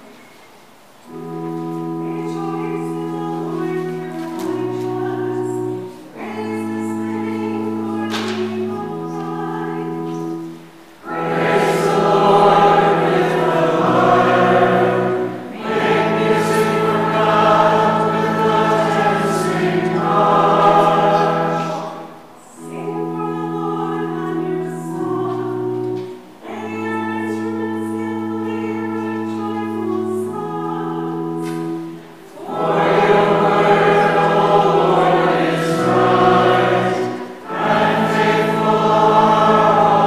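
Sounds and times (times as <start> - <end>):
congregation singing: 0.0 - 40.0
pipe organ chords: 0.0 - 40.0.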